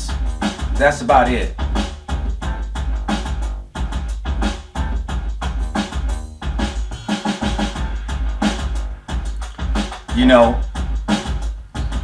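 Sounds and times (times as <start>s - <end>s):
bass line: 0.0s - 12.0s
drum machine beat: 0.0s - 12.0s.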